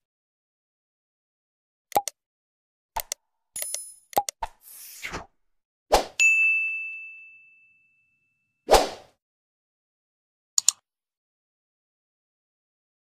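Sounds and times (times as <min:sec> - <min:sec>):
mouse clicks: 0:03.0 - 0:04.6, 0:10.6 - 0:10.8
high bell ding: 0:06.2 - 0:08.5.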